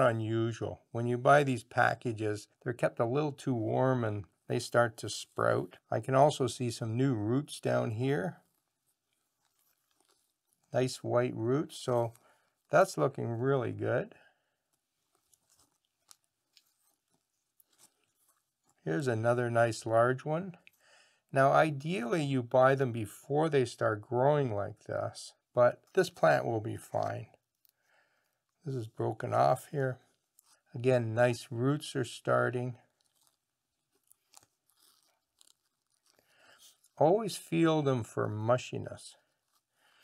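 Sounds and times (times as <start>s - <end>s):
faint crinkles and rustles: 5.2s - 22.0s, 25.3s - 40.0s
crackles of plastic bag handling: 7.9s - 10.8s, 14.6s - 18.9s, 32.8s - 40.0s.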